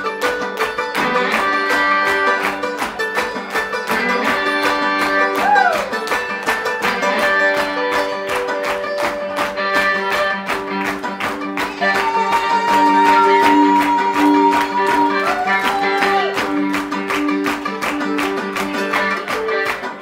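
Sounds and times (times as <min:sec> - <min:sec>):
plucked upright bass: 0:00.0 - 0:12.0
fiddle bowing: 0:00.0 - 0:20.0
guitar: 0:00.0 - 0:20.0.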